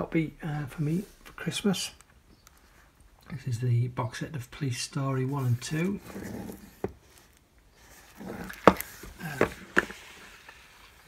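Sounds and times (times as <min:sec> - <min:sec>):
cardboard box rustling: 0:05.4 - 0:11.0.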